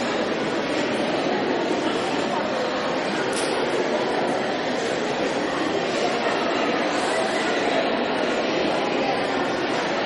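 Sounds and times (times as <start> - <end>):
audience crowd noise: 0.0 - 10.0.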